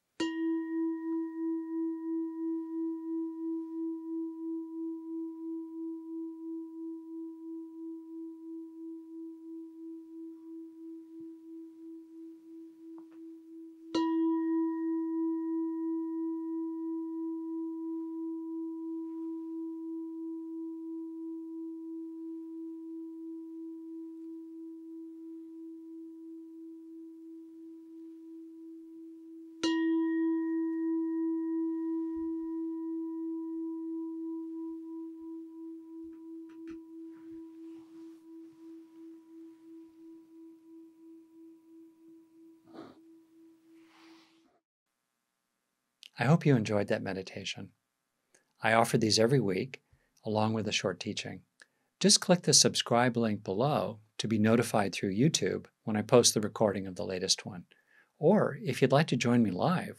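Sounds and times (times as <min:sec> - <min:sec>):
singing bowl ringing: 0:00.2 - 0:44.0.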